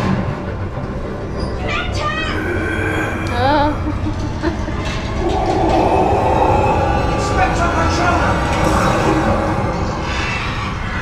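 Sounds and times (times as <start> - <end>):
eerie sound effect: 0.0 - 11.0.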